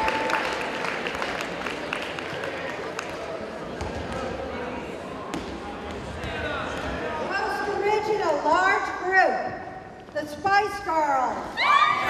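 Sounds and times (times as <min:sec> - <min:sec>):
echoing crowd chatter: 0:00.0 - 0:12.0.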